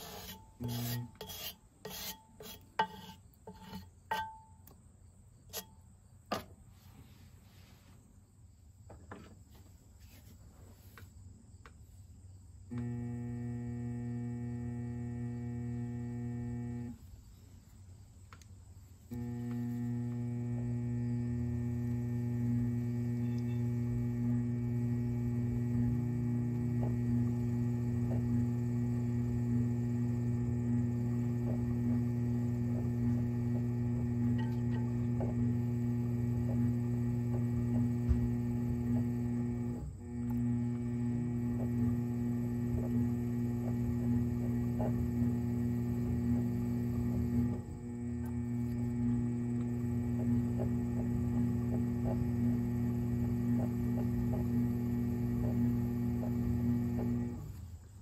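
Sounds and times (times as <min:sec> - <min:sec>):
pottery wheel motor humming: 0:00.0 - 0:04.8, 0:12.6 - 0:17.5, 0:18.8 - 0:58.0.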